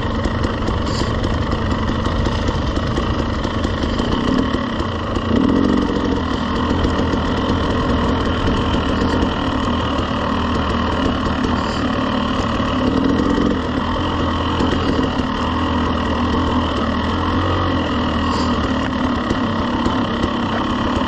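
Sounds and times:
dirt bike engine at low revs: 0.0 - 21.0.

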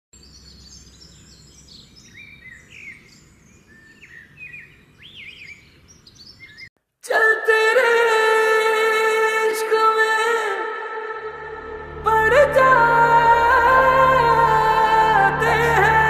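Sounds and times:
birds chirping and singing: 0.2 - 6.7
music with long held notes: 10.5 - 16.0
faint low rumble: 11.2 - 16.0.

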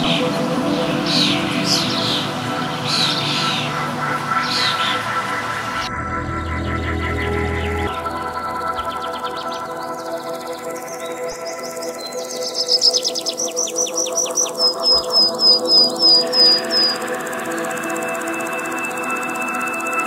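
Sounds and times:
ambient music with held tones: 0.0 - 20.0
songbird singing: 0.0 - 20.0.

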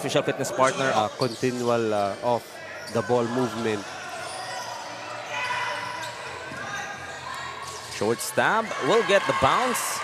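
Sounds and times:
voices echoing in a hall: 0.0 - 10.0
basketball game sounds: 0.6 - 10.0.

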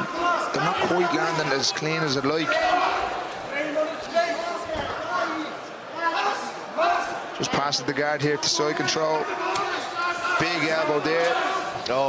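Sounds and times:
men shouting in a hall: 8.4 - 12.0.

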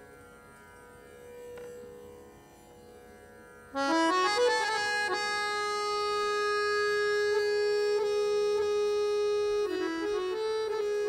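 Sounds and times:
harmonium holding a note: 3.7 - 11.0.

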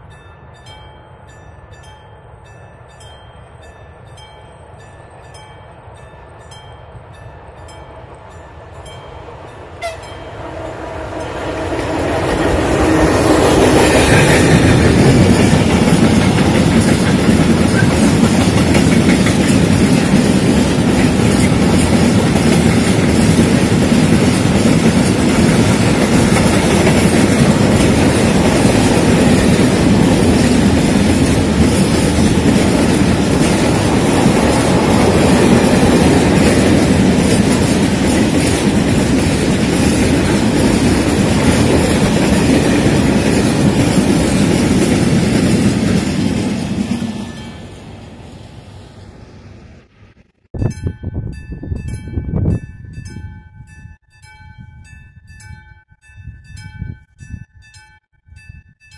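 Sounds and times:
freight train rolling rumble: 0.0 - 53.8
wagons clickety-clack: 13.4 - 47.1.

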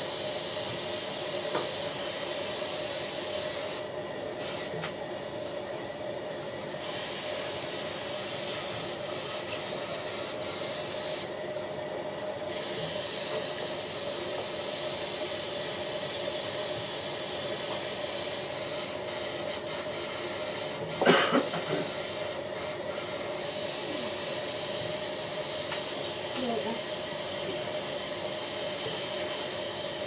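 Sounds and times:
dental suction hissing: 6.6 - 11.3, 12.5 - 30.0
person coughing: 21.0 - 21.9.

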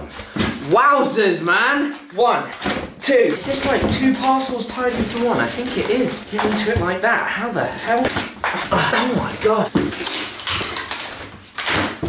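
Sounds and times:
cardboard scraping: 3.4 - 7.1
packing tape tearing: 7.8 - 12.0.

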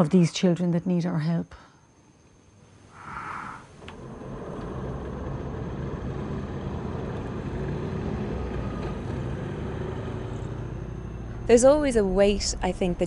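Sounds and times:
vehicle engine rumble: 3.0 - 13.0.

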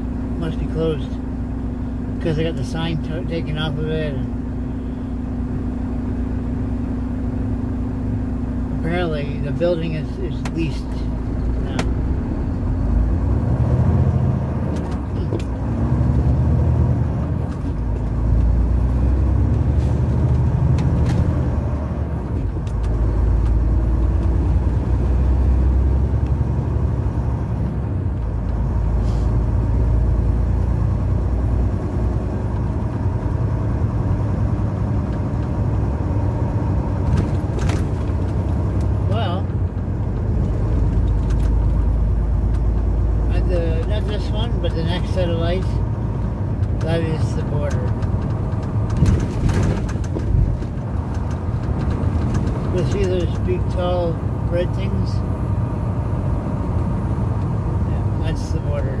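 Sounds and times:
diesel truck engine drone: 0.0 - 59.0
road noise: 0.0 - 59.0.

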